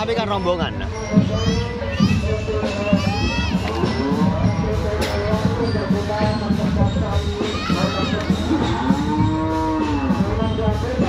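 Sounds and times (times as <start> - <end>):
parade music: 0.0 - 11.0.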